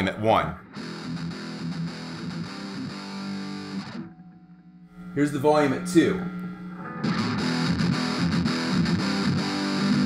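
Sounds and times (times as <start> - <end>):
distorted electric guitar riff: 0.6 - 10.0.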